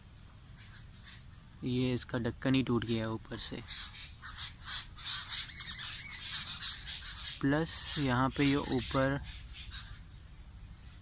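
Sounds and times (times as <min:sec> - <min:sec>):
birds chirping and squawking: 0:00.0 - 0:11.0.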